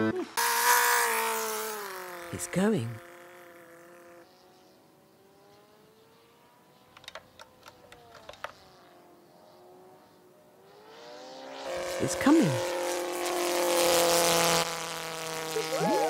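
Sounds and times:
model airplane motor droning: 0.0 - 16.0
sharp clicks: 6.9 - 8.6.

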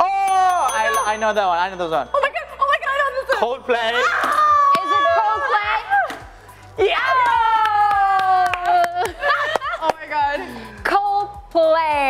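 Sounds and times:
sharp claps: 7.3 - 10.1.

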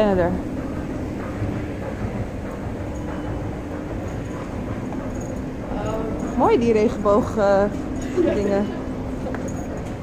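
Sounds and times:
train station low rumble: 0.0 - 10.0.

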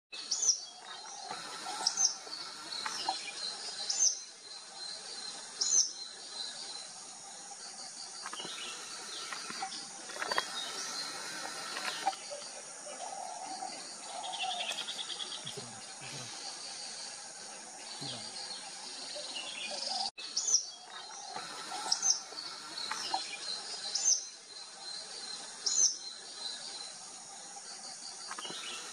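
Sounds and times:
bird trill: 0.2 - 4.3
bird calls: 0.2 - 27.0, 28.0 - 28.9
high-pitched insect drone: 0.4 - 20.1, 20.9 - 28.9.

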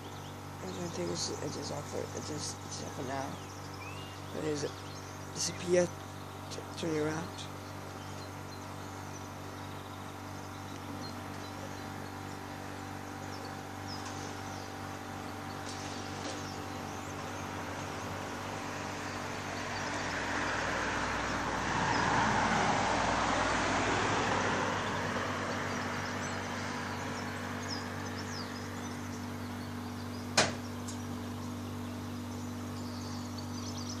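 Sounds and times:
steady low hum: 0.0 - 34.0
car passing: 17.0 - 29.1.

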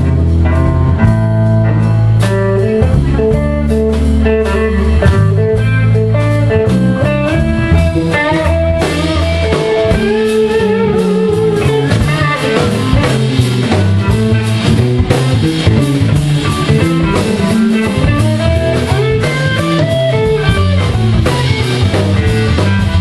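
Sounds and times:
blues band playing: 0.0 - 23.0
electric guitar lead: 0.0 - 23.0
held low notes: 0.0 - 23.0.

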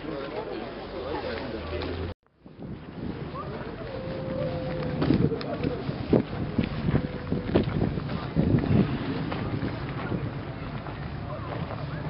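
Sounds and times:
crowd chatter: 0.0 - 12.0
wind buffeting microphone: 2.4 - 12.0.

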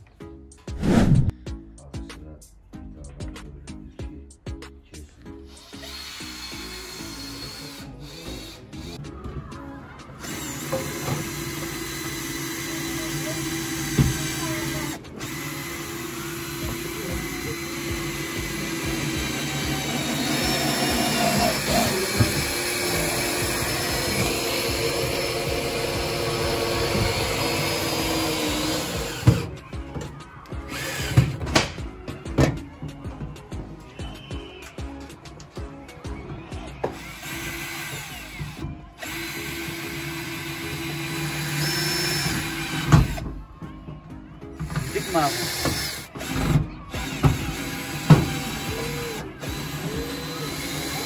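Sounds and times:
cordless drill motor whine: 10.2 - 29.4, 30.7 - 31.2, 36.9 - 43.2, 44.8 - 46.4, 47.0 - 51.0.

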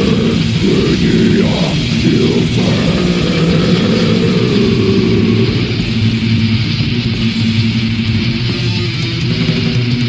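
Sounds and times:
distorted metal guitars and bass: 0.0 - 10.0.

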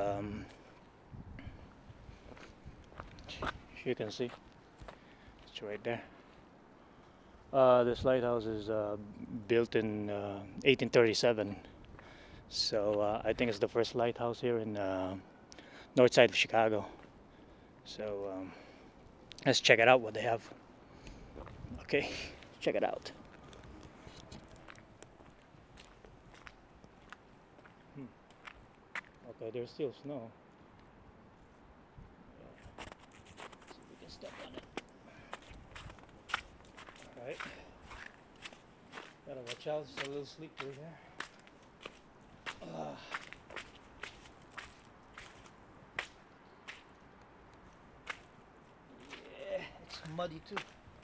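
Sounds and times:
faint footsteps: 0.0 - 6.8, 16.9 - 17.9, 20.4 - 29.3, 32.5 - 51.0.

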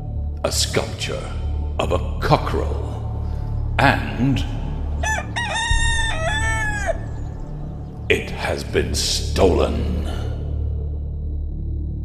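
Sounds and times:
rooster crowing: 5.0 - 7.4.

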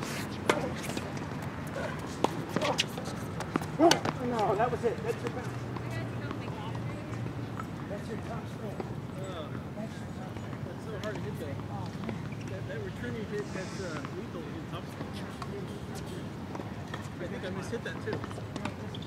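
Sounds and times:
distant chatter of voices: 1.6 - 19.0.

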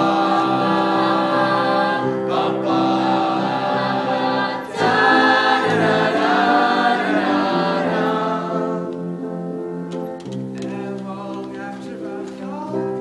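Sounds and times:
choir singing in harmony: 0.0 - 9.5.

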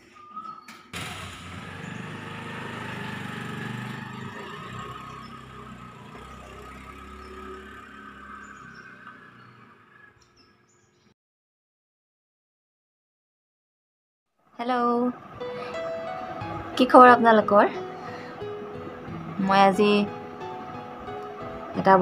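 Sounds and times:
scooter engine running: 1.0 - 10.4.

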